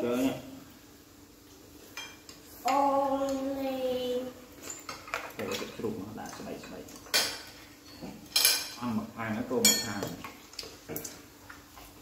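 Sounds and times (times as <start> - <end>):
cutlery clinking against bowls: 4.6 - 8.9, 9.5 - 11.2.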